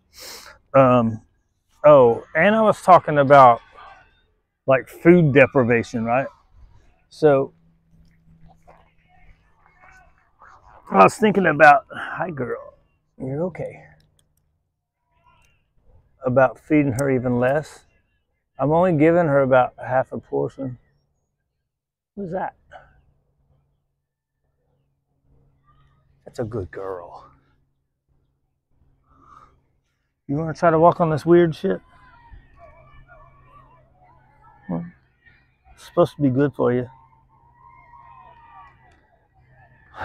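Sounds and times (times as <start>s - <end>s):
faint distant voices: 0.0s - 21.2s, 24.5s - 40.0s
faint clicks: 13.9s - 14.6s.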